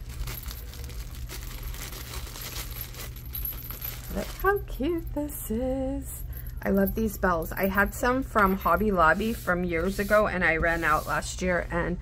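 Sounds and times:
cellophane bag crinkling: 0:00.0 - 0:04.8
jingle bell jingling: 0:02.5 - 0:05.4, 0:06.2 - 0:09.2.

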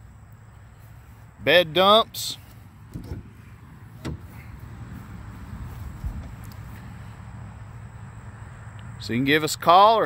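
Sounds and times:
latch click: 0:02.9 - 0:03.4, 0:04.0 - 0:04.4
plastic cargo bed tilting: 0:02.9 - 0:03.4.

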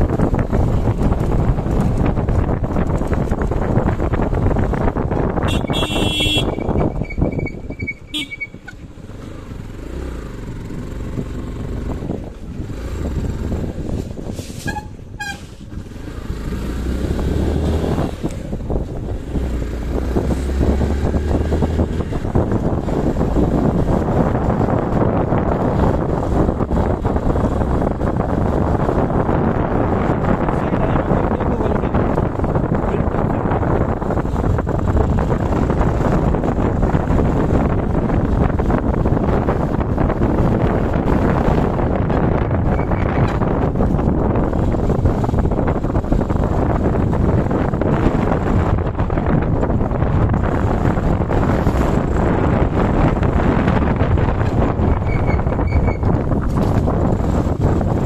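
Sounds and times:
motorcycle engine: 0:00.0 - 0:58.0
wind noise on microphone: 0:00.0 - 0:58.0
vehicle horn tooting: 0:05.4 - 0:06.8, 0:08.1 - 0:08.6.

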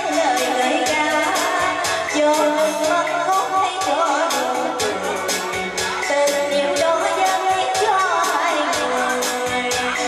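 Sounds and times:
backing music with steady beat: 0:00.0 - 0:10.0
woman singing pop ballad: 0:00.0 - 0:10.0.

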